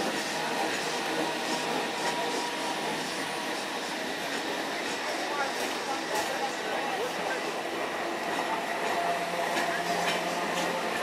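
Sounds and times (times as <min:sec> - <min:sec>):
electric train running: 0:00.0 - 0:11.0.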